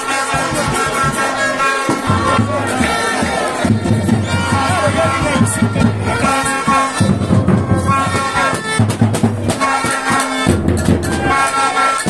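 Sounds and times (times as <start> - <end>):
drumming: 0.0 - 12.0
plastic fan horns blowing: 0.0 - 12.0.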